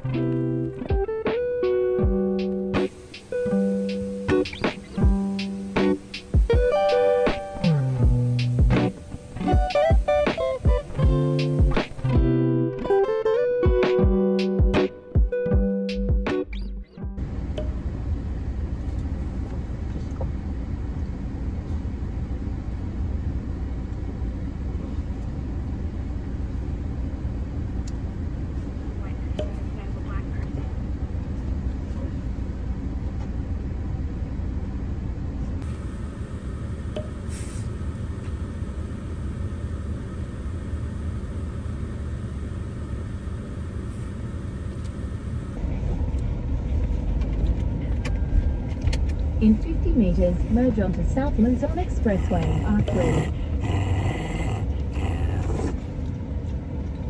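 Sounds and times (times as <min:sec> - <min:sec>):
car cabin road noise: 0:00.0 - 0:57.0.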